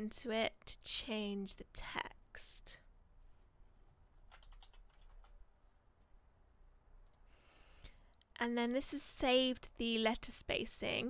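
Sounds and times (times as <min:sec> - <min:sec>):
faint keyboard typing: 0:04.1 - 0:05.4, 0:07.0 - 0:07.3.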